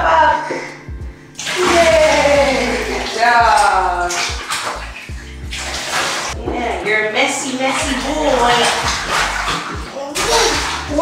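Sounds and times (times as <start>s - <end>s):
background music: 0.0s - 11.0s
water splashing into bathtub: 1.4s - 11.0s.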